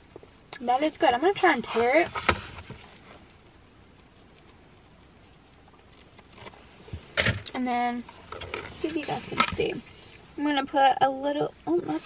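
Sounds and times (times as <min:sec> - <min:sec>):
bread tearing: 0:04.0 - 0:06.6.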